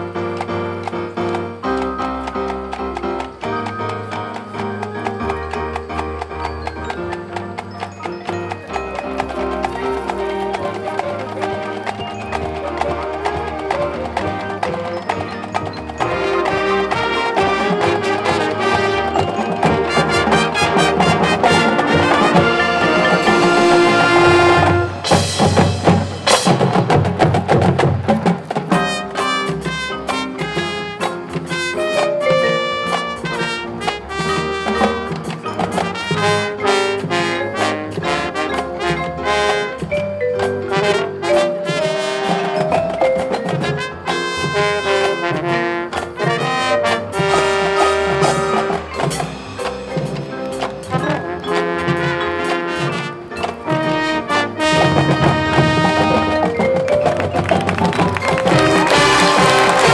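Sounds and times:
mallet percussion and drums: 0.0s - 59.9s
marching band playing: 0.0s - 59.9s.

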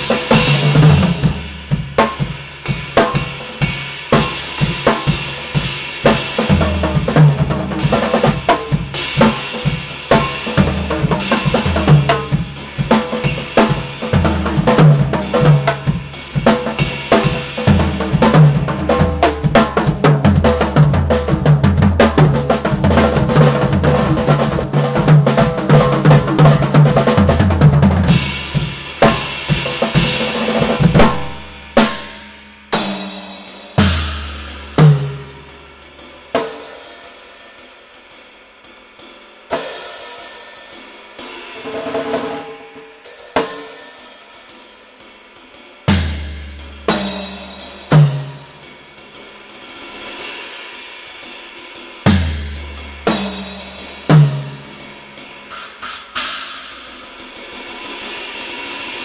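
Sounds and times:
snare drum: 0.0s - 32.2s, 33.0s - 35.6s, 52.1s - 59.0s
cymbals: 0.0s - 59.0s.

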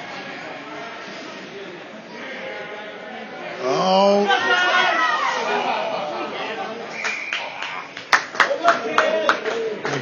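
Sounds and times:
chatter of spectators: 0.0s - 10.0s
hands clapping: 7.0s - 10.0s.

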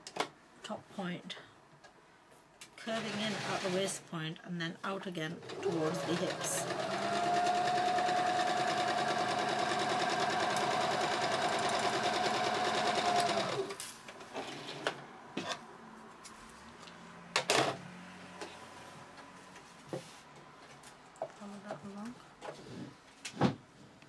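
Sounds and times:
sewing machine stitching: 2.8s - 3.8s, 5.4s - 15.0s.

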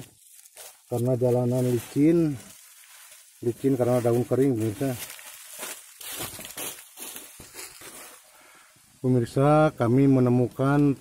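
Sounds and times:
dry leaves crunching underfoot: 0.0s - 8.3s.

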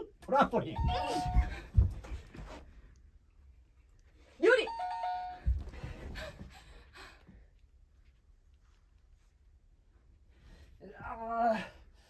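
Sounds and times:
two-note ding-dong chime: 0.8s - 1.5s, 4.7s - 5.5s.

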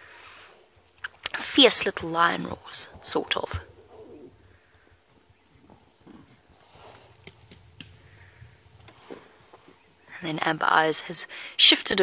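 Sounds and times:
soft animal calls: 3.7s - 10.1s.

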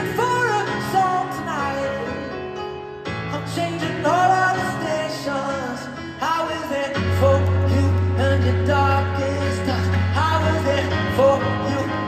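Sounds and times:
man singing: 0.0s - 2.6s, 3.3s - 12.0s
live pop-rock band: 0.0s - 12.0s.

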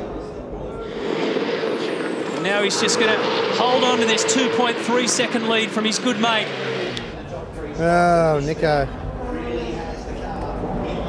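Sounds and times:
racing car engines droning: 0.0s - 11.0s.

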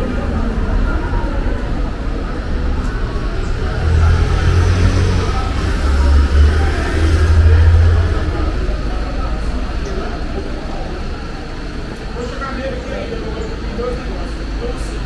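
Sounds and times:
vehicle engine rumbling: 0.0s - 15.0s.

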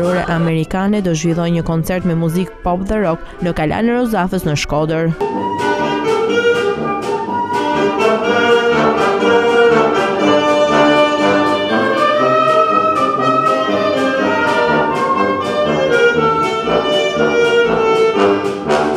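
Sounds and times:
wind band playing chords: 0.0s - 18.9s.

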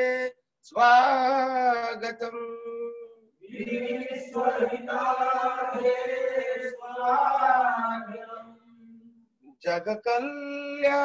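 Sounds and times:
prayer chanted in long notes: 0.0s - 9.2s.

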